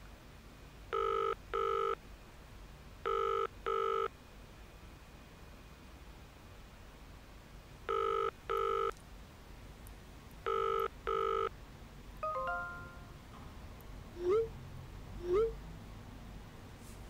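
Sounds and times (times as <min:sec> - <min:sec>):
telephone ringing tone: 0:00.9 - 0:02.0, 0:03.0 - 0:04.1, 0:07.9 - 0:08.9, 0:10.4 - 0:11.5, 0:12.2 - 0:13.2.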